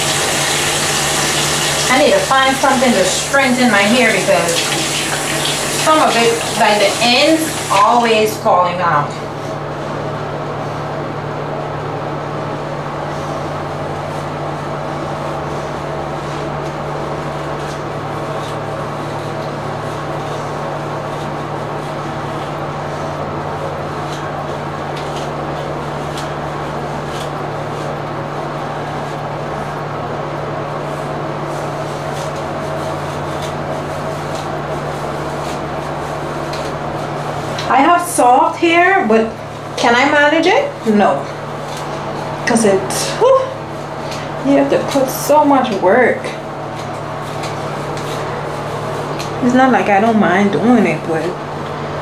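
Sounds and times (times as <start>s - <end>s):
low machine hum: 0.0s - 52.0s.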